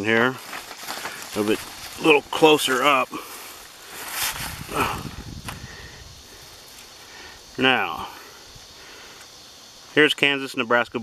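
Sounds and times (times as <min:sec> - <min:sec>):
paper sheets rustling: 0:00.0 - 0:03.0, 0:03.8 - 0:04.7.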